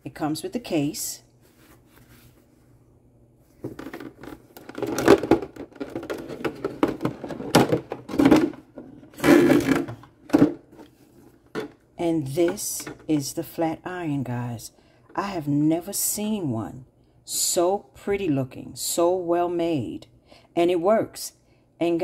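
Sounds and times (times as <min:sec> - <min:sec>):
plastic packaging knocking and rustling: 0:03.6 - 0:11.8.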